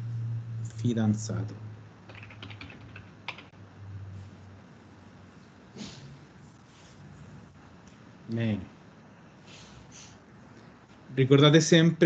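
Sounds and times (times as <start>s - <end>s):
low steady hum: 0.0s - 12.0s
keyboard typing clicks: 2.1s - 3.5s.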